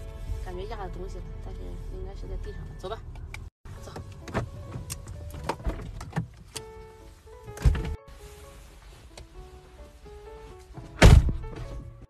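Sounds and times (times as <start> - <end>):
background music: 0.0 - 12.0
clothing rustle: 6.7 - 12.0
heavy thud: 11.0 - 11.6.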